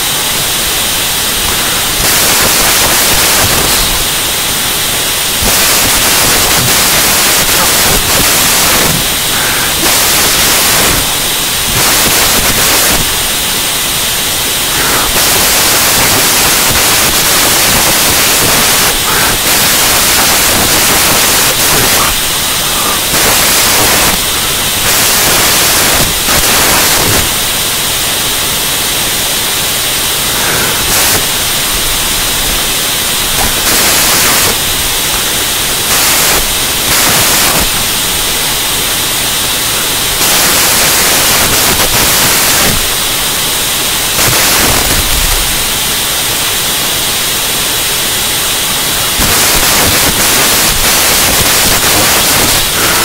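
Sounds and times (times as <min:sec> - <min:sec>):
electronic static hiss: 0:00.0 - 0:53.0.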